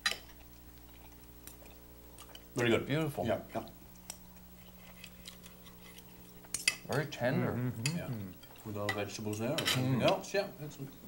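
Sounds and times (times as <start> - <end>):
low steady hum: 0.0 - 11.0
cutlery clicking on plates: 8.8 - 10.2.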